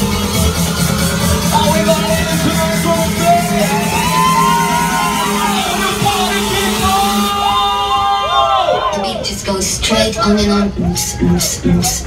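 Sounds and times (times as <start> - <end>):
crowd singing and yelling: 0.0 - 12.0
electronic dance music: 0.0 - 12.0.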